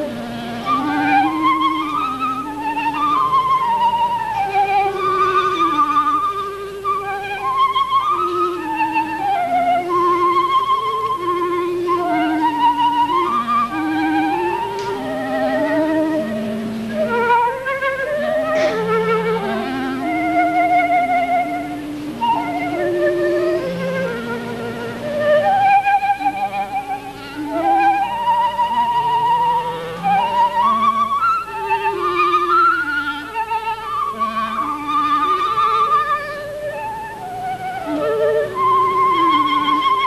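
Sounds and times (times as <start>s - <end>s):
clarinet melody: 0.0s - 40.0s.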